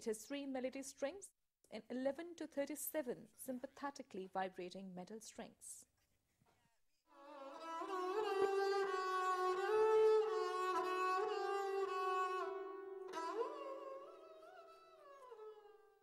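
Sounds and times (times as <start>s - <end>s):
bowed string instrument: 7.1s - 16.0s.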